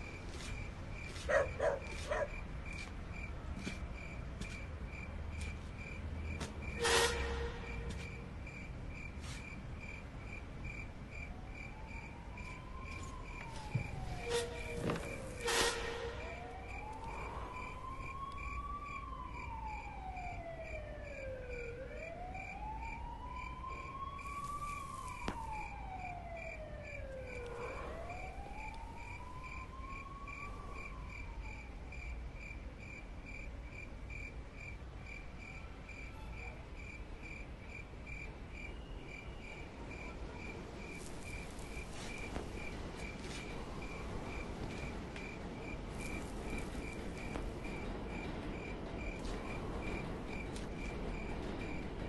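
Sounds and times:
cricket chirping: 0:00.0 - 0:51.8
siren wailing: 0:11.2 - 0:31.9.

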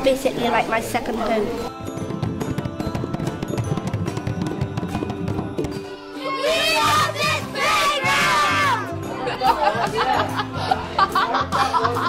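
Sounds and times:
children shouting together: 0:06.2 - 0:08.9.

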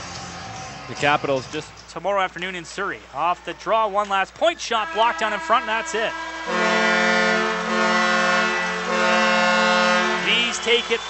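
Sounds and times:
arena horn long steady note: 0:04.8 - 0:11.0.

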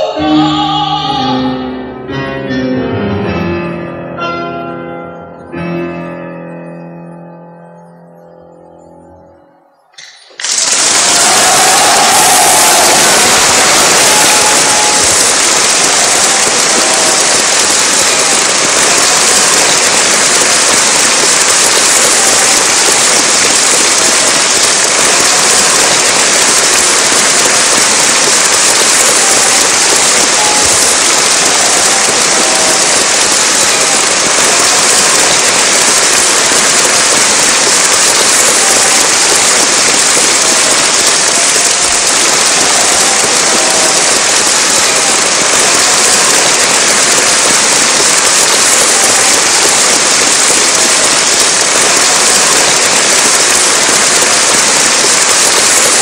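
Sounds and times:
audience applause: 0:09.9 - 0:56.0.

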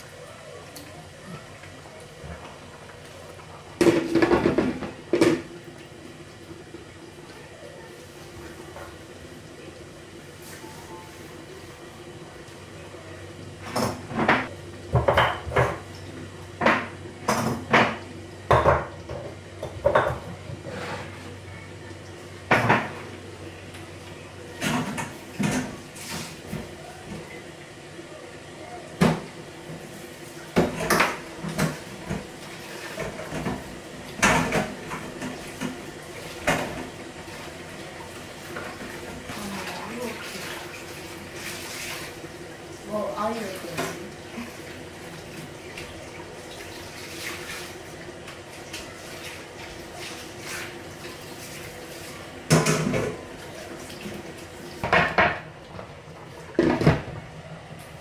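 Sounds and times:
running tap water: 0:00.0 - 0:58.0
dishes clattering in metal sink: 0:03.8 - 0:05.5, 0:13.6 - 0:21.3, 0:22.5 - 0:23.1, 0:24.5 - 0:27.3, 0:30.5 - 0:37.5, 0:52.4 - 0:57.2.

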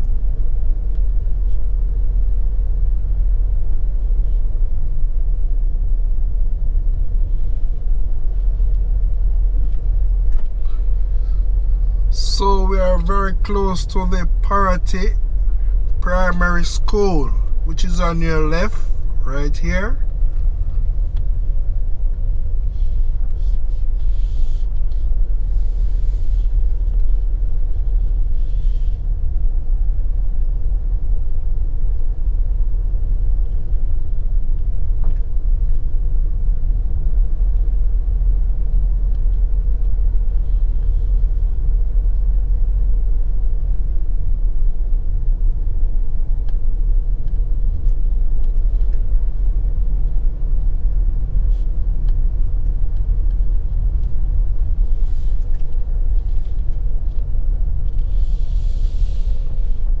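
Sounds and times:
vehicle driving on paved road: 0:00.0 - 1:00.0.

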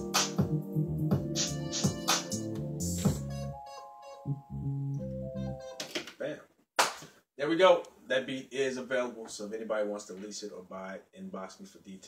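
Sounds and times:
electronic beat: 0:00.0 - 0:04.6.

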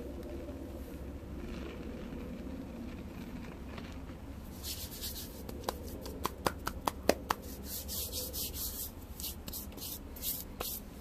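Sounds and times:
powder sifting between fingers: 0:00.0 - 0:11.0.

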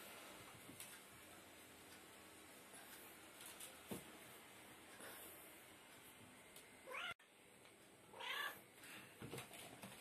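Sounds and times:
cat meowing: 0:06.9 - 0:07.2, 0:08.2 - 0:08.6.

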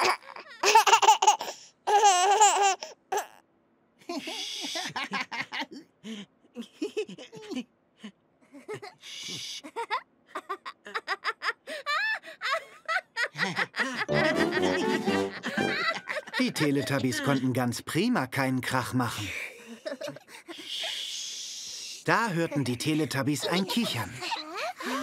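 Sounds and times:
baby laughing and giggling: 0:00.0 - 0:03.4, 0:14.1 - 0:17.5, 0:22.3 - 0:25.0.

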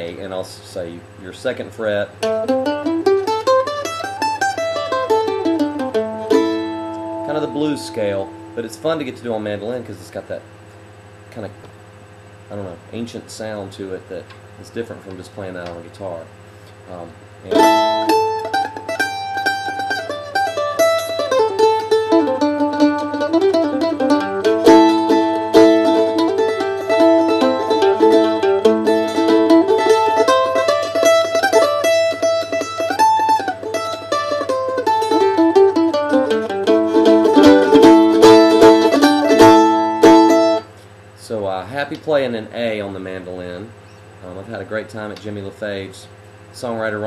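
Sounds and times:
bluesy mandolin picking: 0:00.0 - 0:10.4, 0:17.5 - 0:40.7.

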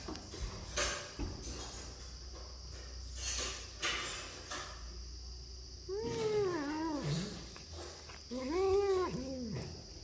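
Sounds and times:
kitten yowling: 0:05.9 - 0:07.4, 0:08.3 - 0:09.8.

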